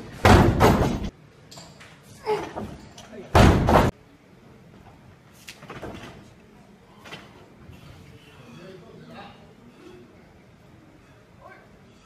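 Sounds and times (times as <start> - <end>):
barbell thudding on wooden platform: 0.2 - 1.1, 3.4 - 3.9.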